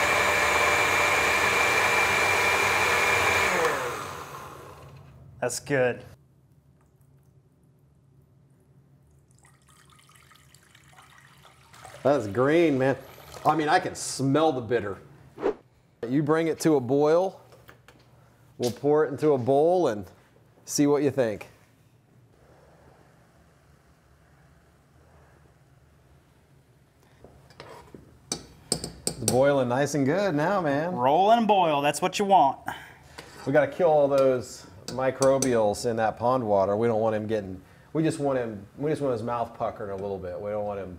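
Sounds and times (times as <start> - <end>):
thick liquid pouring into metal pot: 9.0 - 13.7.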